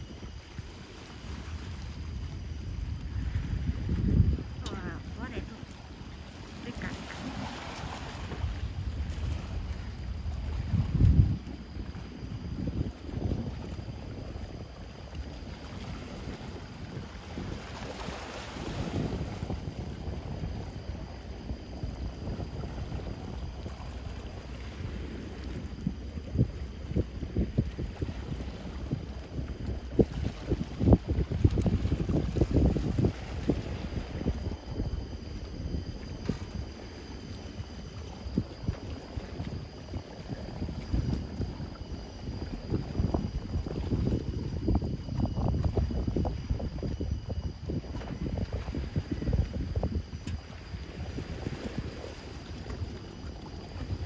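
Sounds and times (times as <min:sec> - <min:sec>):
wind buffeting microphone: 0:00.0 - 0:54.0.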